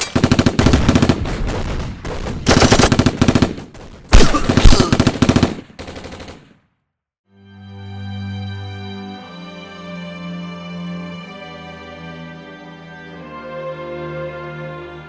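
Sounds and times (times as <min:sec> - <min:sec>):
machine-gun fire bursts: 0:00.0 - 0:06.6
heavy booms: 0:00.6 - 0:04.9
music: 0:07.2 - 0:15.0.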